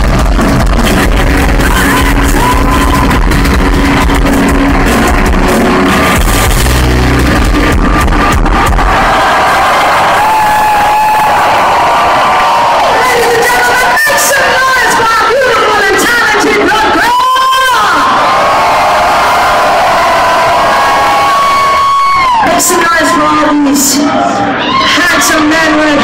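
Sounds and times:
live metal band playing: 0.0s - 10.7s
crowd cheering and yelling: 0.0s - 26.0s.

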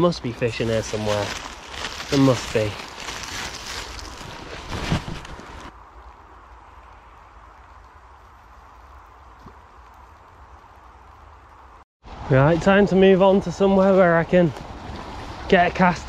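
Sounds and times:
wind rumbling on microphone: 0.4s - 12.8s
microphone handling noise: 4.2s - 5.7s.

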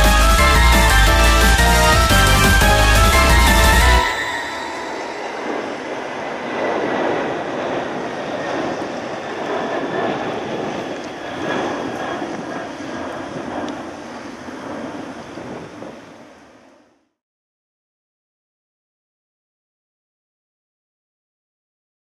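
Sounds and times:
jet engine rushing: 0.0s - 16.8s.

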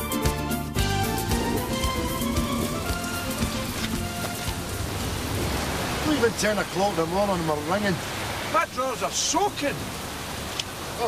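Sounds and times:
music: 0.0s - 4.9s
heavy rain hiss: 0.0s - 11.0s.

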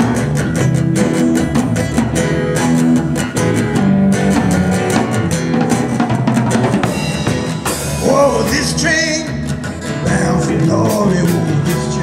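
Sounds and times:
drum kit beat: 0.0s - 12.0s
electric bass: 0.0s - 12.0s
strummed acoustic guitar: 0.0s - 12.0s.

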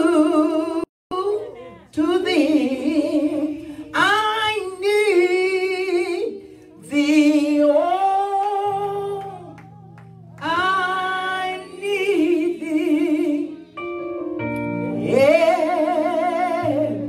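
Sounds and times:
woman singing with vibrato: 0.0s - 9.6s, 10.4s - 13.6s, 14.9s - 17.0s.

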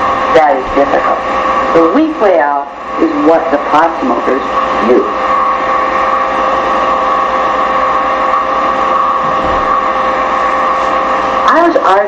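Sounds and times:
electrical hum and hiss: 0.0s - 12.0s
high held tones: 0.0s - 12.0s.

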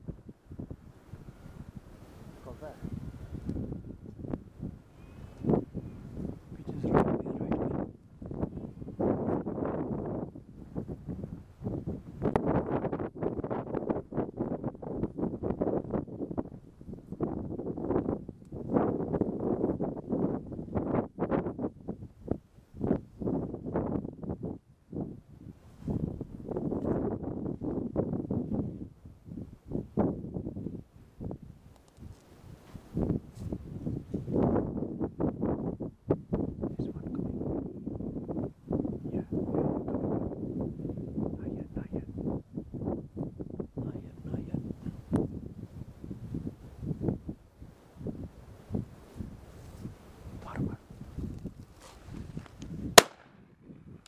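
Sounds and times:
wind buffeting microphone: 0.0s - 54.0s
rustling: 51.4s - 52.7s.

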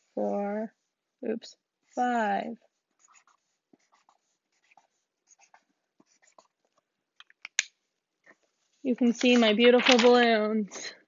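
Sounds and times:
pen scratching on paper: 1.9s - 6.6s.

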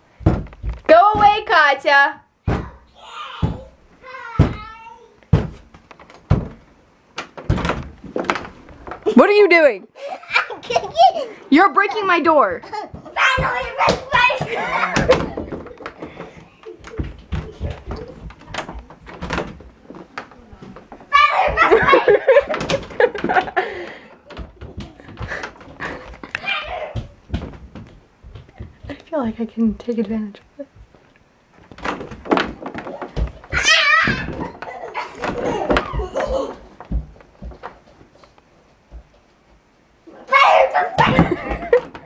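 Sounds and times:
knocks and bumps on door: 0.2s - 1.5s, 2.4s - 2.8s, 3.4s - 6.6s, 7.2s - 8.6s, 12.9s - 16.2s, 16.8s - 19.8s, 21.2s - 23.6s, 26.6s - 29.0s, 31.7s - 37.7s
door thuds: 2.4s - 2.8s, 5.3s - 6.6s, 7.2s - 8.5s, 13.3s - 15.8s, 21.4s - 23.6s, 31.7s - 36.3s.

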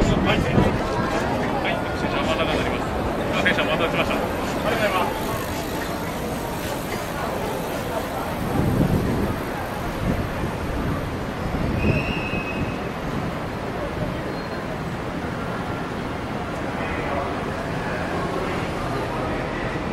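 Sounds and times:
passers-by talking: 0.0s - 19.9s
road traffic: 0.0s - 19.9s.

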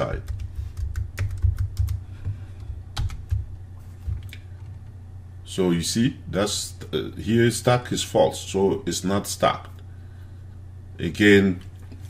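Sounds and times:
computer keyboard typing: 0.0s - 2.0s, 3.0s - 3.5s
low steady hum: 0.0s - 12.0s.

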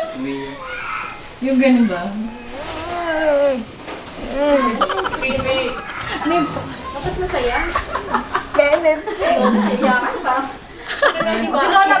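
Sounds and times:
person making wordless call: 4.2s - 6.3s.

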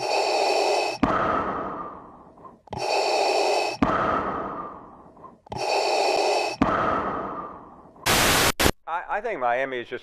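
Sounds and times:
heavy breathing: 0.0s - 8.0s.

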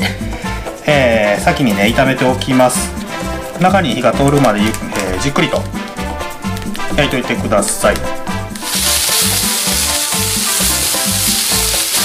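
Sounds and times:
background music with steady beat: 0.0s - 12.0s
chicken sizzling in frying pan: 8.6s - 12.0s.

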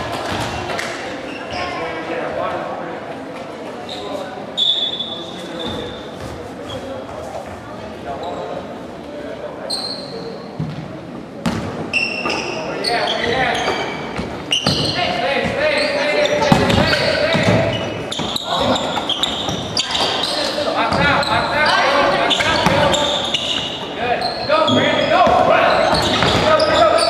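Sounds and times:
players and spectators voices: 0.0s - 27.0s
basketball bouncing on gym floor: 10.6s - 11.8s, 13.6s - 15.6s, 16.4s - 20.2s, 20.9s - 21.4s, 25.2s - 26.8s.

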